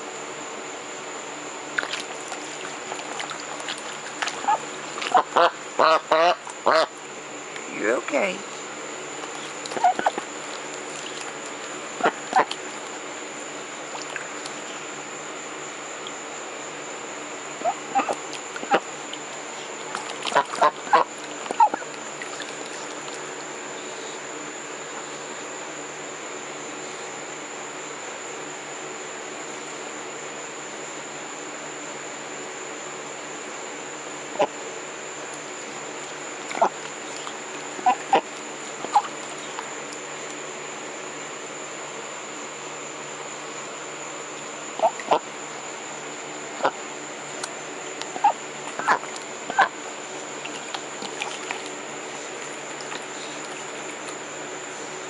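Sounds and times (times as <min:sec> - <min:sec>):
duck calling: 0:04.2 - 0:06.9, 0:09.4 - 0:10.3, 0:12.0 - 0:12.6, 0:17.6 - 0:18.8, 0:19.9 - 0:21.9, 0:36.5 - 0:39.6, 0:44.8 - 0:45.3, 0:48.1 - 0:49.8.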